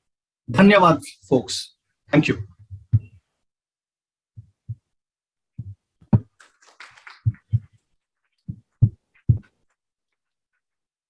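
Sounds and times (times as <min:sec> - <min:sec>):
dull low thumps: 0:02.3 - 0:03.2, 0:04.4 - 0:05.0, 0:05.6 - 0:06.3, 0:07.2 - 0:07.7, 0:08.5 - 0:09.5.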